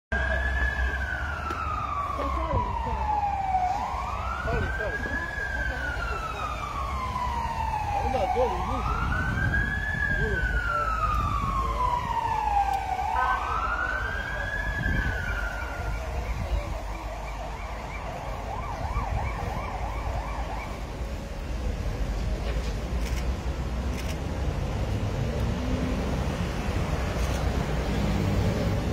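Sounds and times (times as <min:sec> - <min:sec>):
emergency vehicle siren wailing: 0:00.1 - 0:23.3, 0:23.9 - 0:28.9
engine and traffic rumble: 0:00.1 - 0:28.9.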